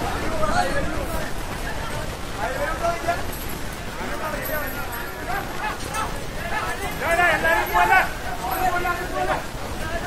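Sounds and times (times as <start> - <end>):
outdoor background noise: 0.0 - 10.0
men shouting: 5.2 - 10.0.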